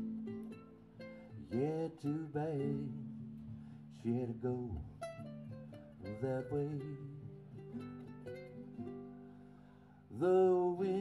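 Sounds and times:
ukuleles playing picked notes: 0:00.0 - 0:11.0.

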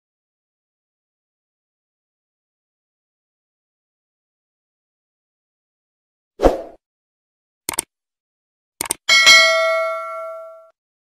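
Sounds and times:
quick clicks: 0:07.7 - 0:07.9, 0:08.8 - 0:09.0
bell ding: 0:09.1 - 0:10.8.

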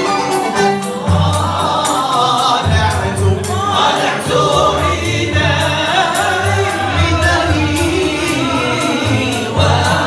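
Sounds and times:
men singing together: 0:00.0 - 0:10.0
violins: 0:00.0 - 0:10.0.

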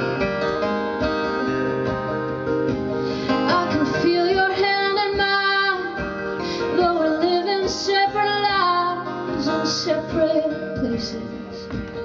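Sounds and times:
strummed acoustic guitar: 0:00.0 - 0:12.0
woman singing: 0:03.3 - 0:12.0.

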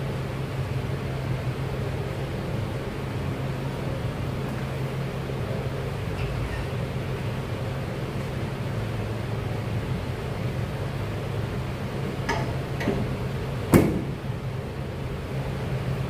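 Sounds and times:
ventilation hum: 0:00.0 - 0:16.0
sharp knock: 0:13.7 - 0:14.2.

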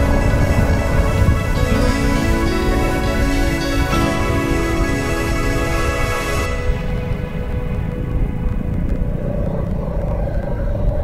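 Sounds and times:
motorcycle engine rumble: 0:00.0 - 0:11.0
road noise: 0:00.0 - 0:11.0.

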